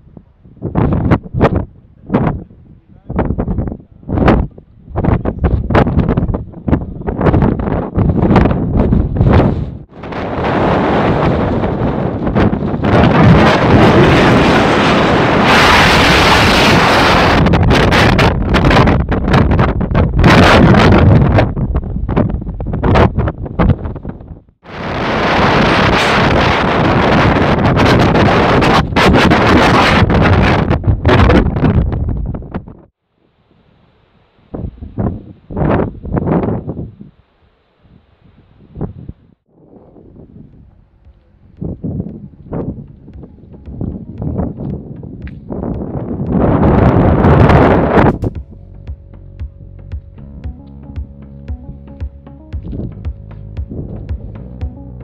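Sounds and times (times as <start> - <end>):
wind buffeting microphone: 0.0 - 32.9, 34.5 - 37.2, 37.9 - 50.2, 52.6 - 54.5.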